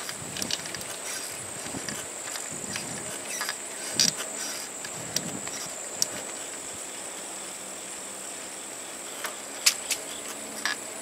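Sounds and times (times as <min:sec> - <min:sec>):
insects trilling: 0:00.0 - 0:11.0
sharp click: 0:09.2 - 0:10.8.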